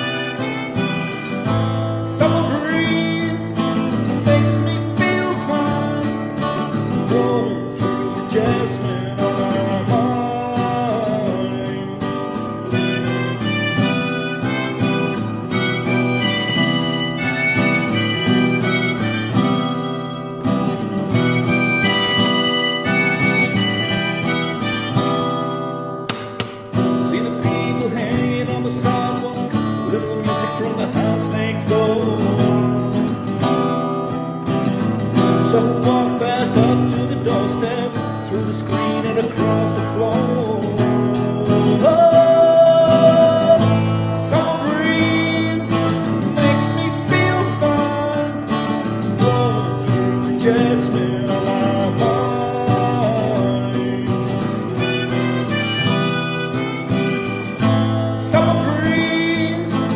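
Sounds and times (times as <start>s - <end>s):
harmonica playing: 0.0s - 31.1s, 38.7s - 59.9s
strummed acoustic guitar: 0.0s - 59.9s.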